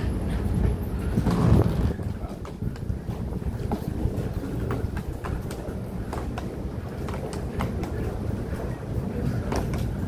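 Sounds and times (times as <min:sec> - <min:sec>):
suitcase wheels rolling on concrete: 0:00.5 - 0:10.0
footsteps on concrete: 0:01.2 - 0:10.0.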